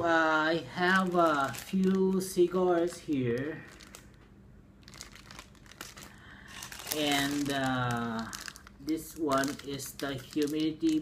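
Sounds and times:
plastic bag crinkling: 0.2 - 4.2, 4.8 - 11.0.

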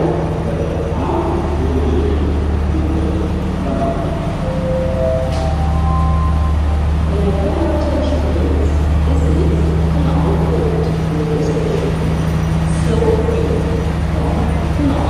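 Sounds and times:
diesel train idling: 0.0 - 15.0
people talking: 0.0 - 15.0.

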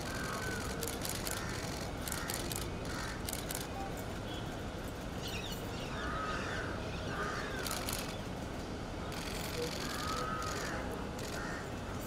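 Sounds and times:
crow cawing: 0.0 - 0.7, 1.3 - 3.2, 9.8 - 11.7
street hum: 0.0 - 12.0.

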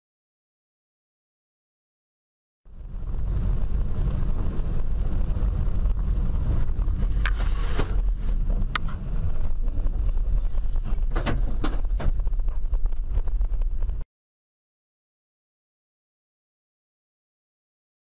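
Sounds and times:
vehicle driving rumble: 2.7 - 14.0.

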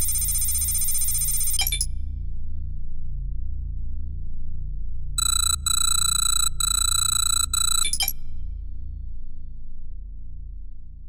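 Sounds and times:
high-pitched electronic tone: 5.2 - 8.1.

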